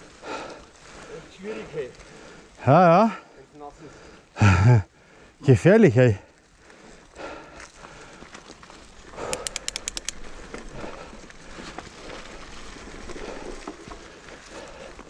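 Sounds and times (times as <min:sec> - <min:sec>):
bike tyres rustling over dry leaves: 0:00.0 - 0:09.3, 0:10.1 - 0:15.0
rapid sharp clicks: 0:09.2 - 0:10.2.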